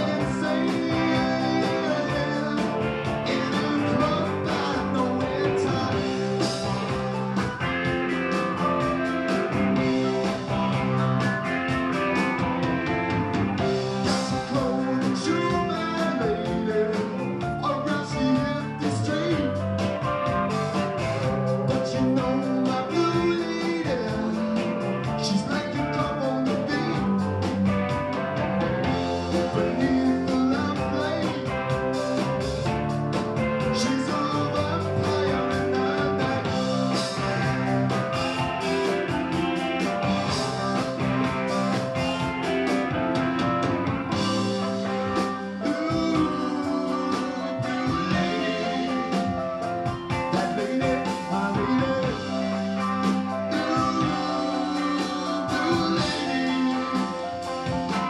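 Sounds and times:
person singing: 0.0s - 11.2s, 13.6s - 27.6s, 28.9s - 42.4s, 44.1s - 58.0s
drums: 0.0s - 58.0s
electric guitar: 0.0s - 58.0s.

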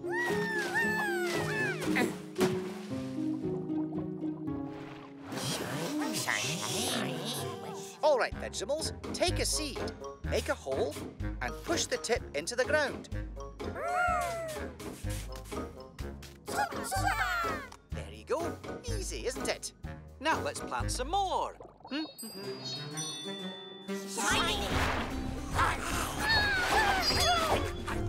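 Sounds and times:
cartoon background music: 0.0s - 28.0s
squeaky cartoon creature call: 26.3s - 27.6s.

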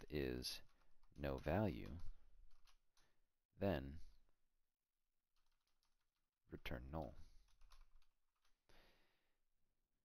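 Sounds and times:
soft keyboard typing: 0.0s - 3.2s, 5.3s - 8.8s.

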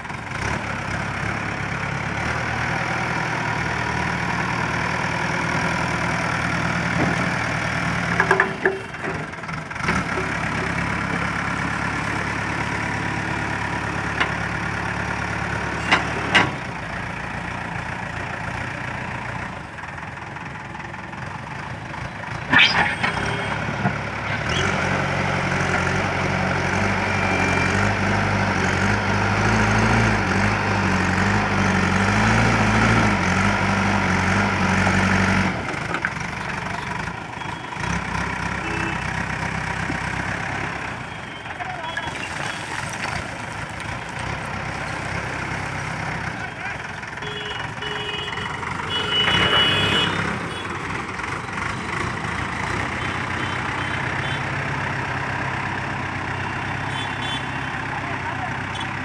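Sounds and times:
diesel engine working hard: 0.0s - 59.0s.

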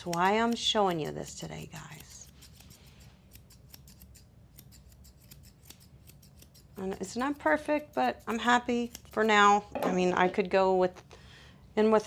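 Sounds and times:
shears snipping hair: 0.0s - 10.5s.

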